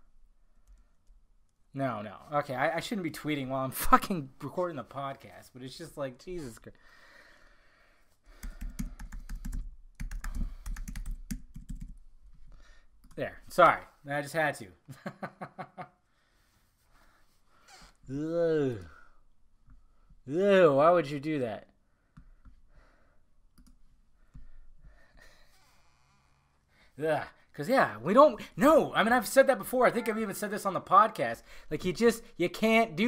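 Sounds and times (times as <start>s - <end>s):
typing on computer keyboard: 8.4s - 12.0s.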